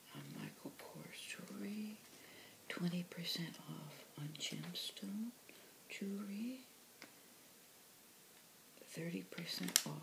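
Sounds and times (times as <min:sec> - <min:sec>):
woman reading aloud softly: 0:00.0 - 0:02.0, 0:02.7 - 0:06.7, 0:08.8 - 0:10.0.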